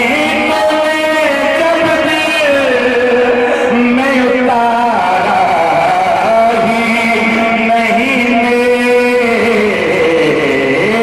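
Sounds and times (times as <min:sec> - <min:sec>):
man chanting through a microphone: 0:00.0 - 0:11.0.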